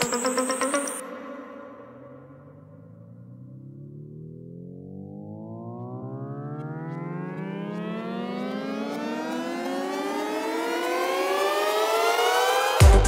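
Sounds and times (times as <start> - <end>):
synthesizer riser rising in pitch: 0.0 - 13.0
kick drum and hi-hats: 12.7 - 13.0.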